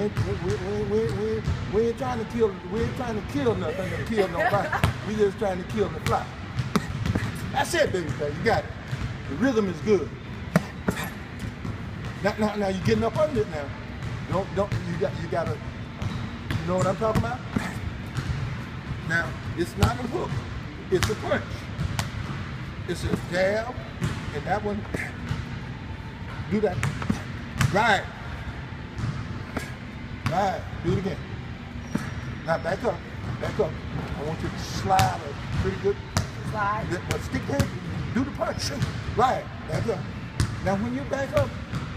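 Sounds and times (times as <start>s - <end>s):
low gym background: 0.0s - 41.9s.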